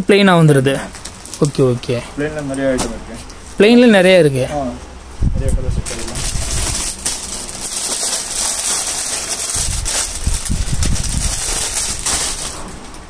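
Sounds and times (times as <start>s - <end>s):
plastic packaging crinkling: 0.8s - 1.9s, 5.8s - 13.0s.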